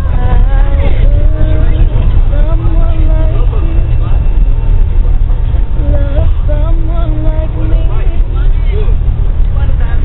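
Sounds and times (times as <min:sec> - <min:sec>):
moving bus rumble: 0:00.0 - 0:10.0.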